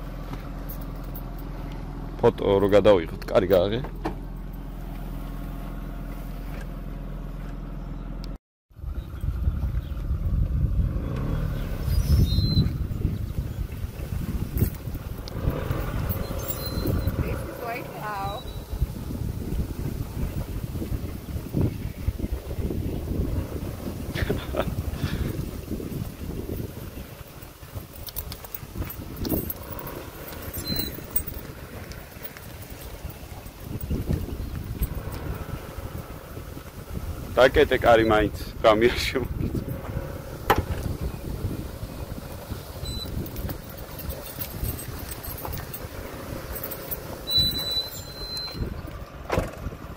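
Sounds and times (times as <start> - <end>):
car engine idling: 0.0 - 11.8, 12.7 - 49.9
car driving through tall grass: 8.8 - 49.9.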